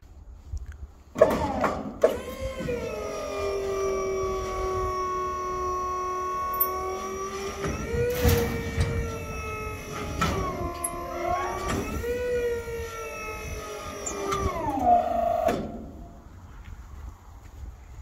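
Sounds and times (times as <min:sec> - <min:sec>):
tarp drive motor whining: 0:01.2 - 0:16.2.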